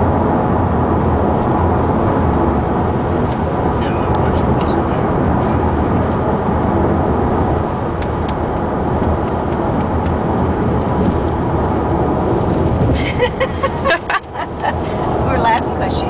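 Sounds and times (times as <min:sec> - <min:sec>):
road and engine noise in car: 0:00.0 - 0:16.0.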